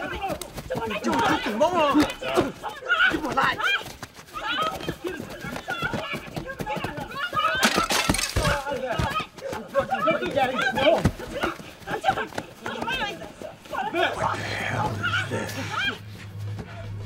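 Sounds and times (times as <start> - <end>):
men shouting and yelling: 0.0 - 17.0.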